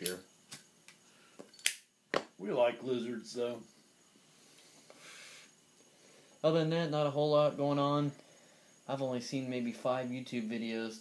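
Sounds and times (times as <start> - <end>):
sharp loud click: 1.6 - 1.9.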